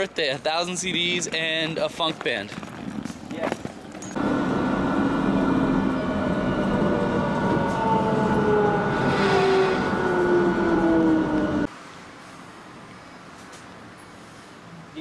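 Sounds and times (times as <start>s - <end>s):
train rumble: 4.1s - 11.7s
train whine falling in pitch: 4.2s - 11.7s.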